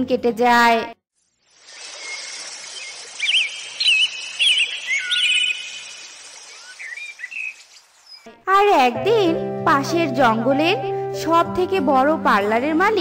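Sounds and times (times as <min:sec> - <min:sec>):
steady outdoor hiss: 0:01.2 - 0:08.2
chirping whistled bird calls: 0:01.6 - 0:08.3
bright children's cartoon music: 0:08.3 - 0:13.0.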